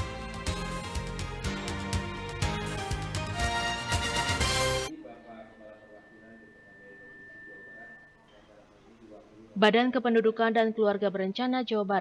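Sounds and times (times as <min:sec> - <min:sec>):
faint high-pitched tone: 0:04.9 - 0:09.5
faint low background sound: 0:04.9 - 0:12.0.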